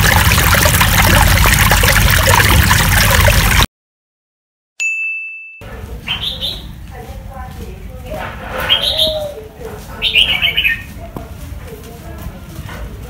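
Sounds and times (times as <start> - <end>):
bright ding: 4.8 - 5.6.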